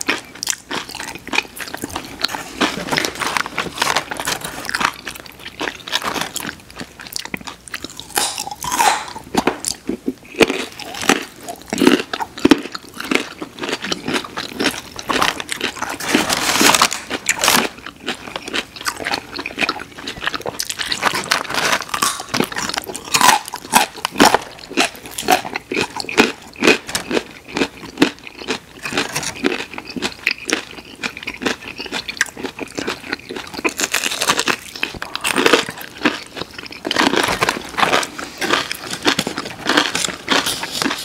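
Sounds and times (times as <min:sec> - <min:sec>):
crunching and chewing food: 0:00.0 - 0:41.0.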